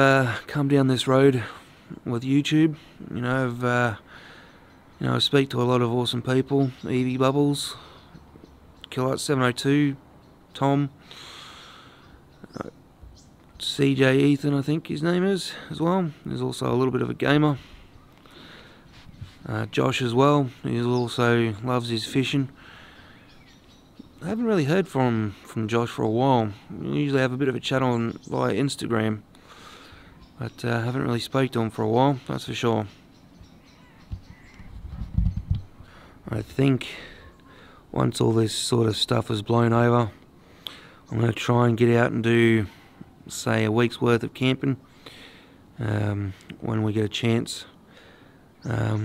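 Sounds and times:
man breathing in: 0:04.1 - 0:04.8, 0:11.0 - 0:12.2, 0:17.6 - 0:19.4, 0:22.6 - 0:23.3, 0:29.4 - 0:30.2, 0:35.8 - 0:36.2, 0:37.0 - 0:37.9, 0:40.4 - 0:41.1, 0:44.8 - 0:45.7, 0:47.8 - 0:48.5
faint crow cawing: 0:33.6 - 0:34.8.

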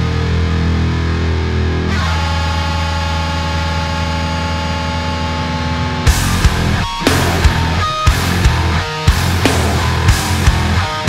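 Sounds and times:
distorted electric guitar chord: 0:00.0 - 0:11.0.

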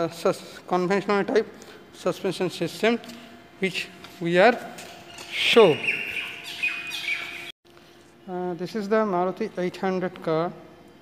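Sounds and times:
birds chirping: 0:04.9 - 0:07.6.

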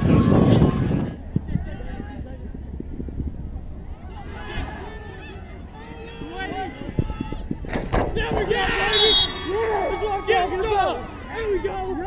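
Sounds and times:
players shouting and cheering: 0:03.9 - 0:12.0.

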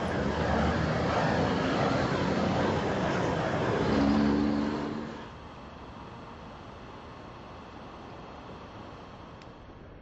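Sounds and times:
gas torch roaring: 0:00.0 - 0:05.4.

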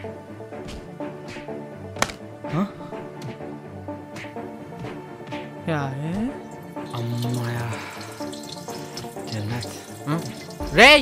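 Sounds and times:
music with long held notes: 0:00.0 - 0:11.0
man urinating against wall: 0:06.4 - 0:10.8.

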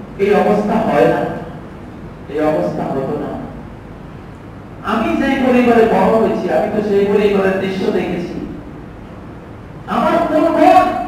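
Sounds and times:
low room noise: 0:00.0 - 0:11.0
man preaching: 0:00.2 - 0:01.6, 0:02.3 - 0:03.6, 0:04.8 - 0:08.6, 0:09.9 - 0:11.0.

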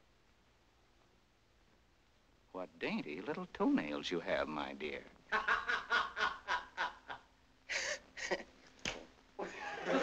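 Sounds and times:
man laughing: 0:05.3 - 0:08.5.

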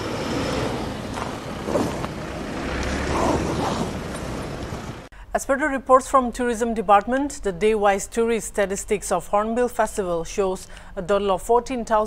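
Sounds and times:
suv engines driving slowly past: 0:00.0 - 0:05.1.

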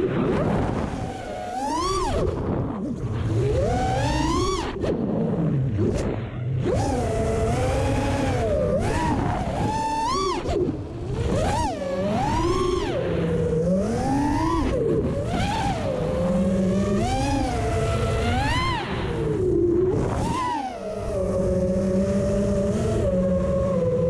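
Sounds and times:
drone motors whining: 0:00.0 - 0:24.0
wind rumble: 0:00.0 - 0:24.0.

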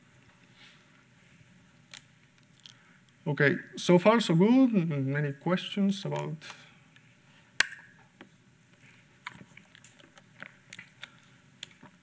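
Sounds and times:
faint clicks and crackles: 0:01.8 - 0:03.2, 0:08.7 - 0:12.0.

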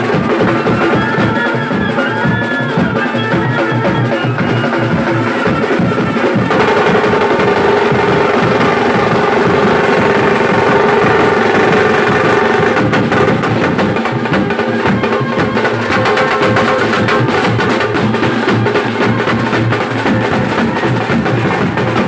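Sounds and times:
bass drums drumming: 0:00.0 - 0:22.0
trumpets and saxophone melody: 0:04.8 - 0:22.0.

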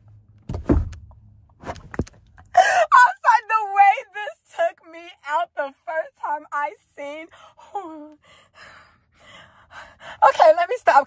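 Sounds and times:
woman gasping: 0:02.5 - 0:03.0.

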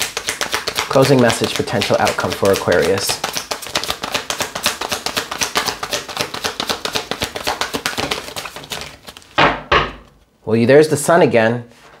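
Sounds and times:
cards being shuffled: 0:00.0 - 0:09.4.

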